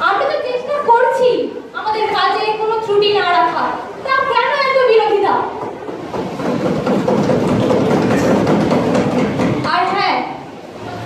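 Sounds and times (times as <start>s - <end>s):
audience applause: 6.3s - 9.5s.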